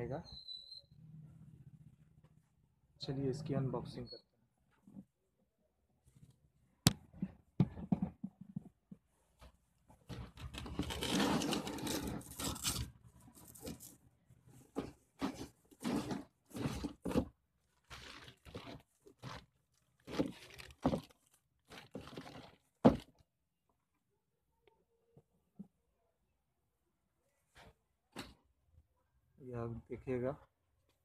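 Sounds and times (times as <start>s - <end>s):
cardboard scraping and crinkling: 10.1s - 14.0s, 14.7s - 23.1s
cardboard tearing: 10.6s - 12.9s.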